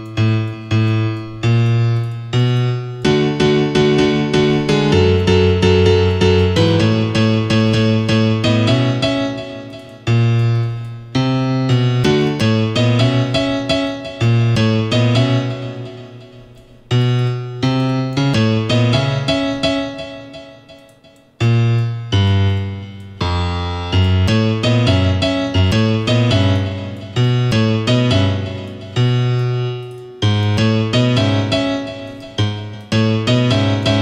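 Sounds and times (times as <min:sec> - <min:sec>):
software piano chords: 0:00.0 - 0:34.0.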